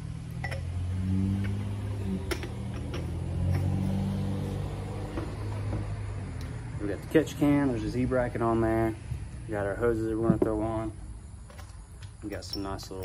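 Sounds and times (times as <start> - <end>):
vehicle engine humming: 0.0 - 12.5.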